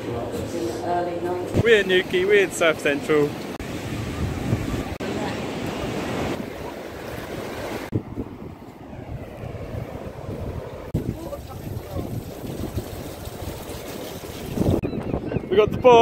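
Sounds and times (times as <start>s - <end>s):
surf washing on beach: 1.5s - 14.8s
wind buffeting microphone: 3.6s - 5.1s, 5.8s - 16.0s.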